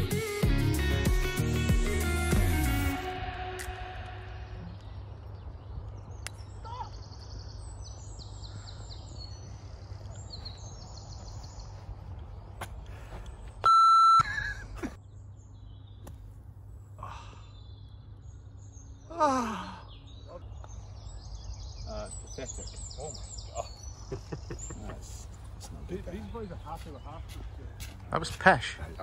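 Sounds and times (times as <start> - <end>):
birds singing in high trills: 4.0 - 12.0, 13.4 - 28.0
short electronic beep: 13.6 - 14.3.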